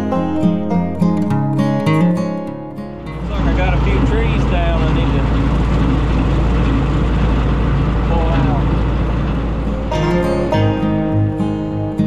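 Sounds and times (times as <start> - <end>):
higher wavering sounds: 0.0 - 5.8, 8.1 - 12.0
diesel tractor engine running: 0.0 - 12.0.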